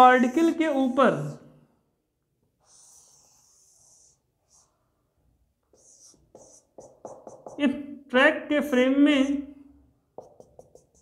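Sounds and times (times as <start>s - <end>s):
marker pen on whiteboard: 0.0s - 1.4s, 2.4s - 8.0s, 8.6s - 11.0s.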